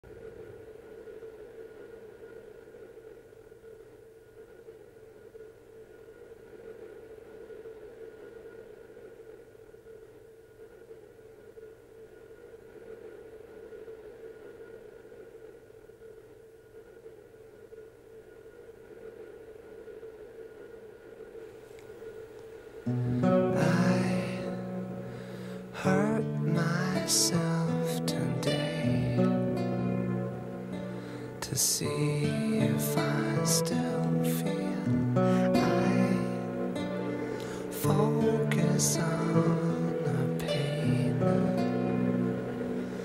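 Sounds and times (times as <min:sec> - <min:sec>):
droning hiss on sustained tones: 0:00.0 - 0:43.0
low hum: 0:00.0 - 0:43.0.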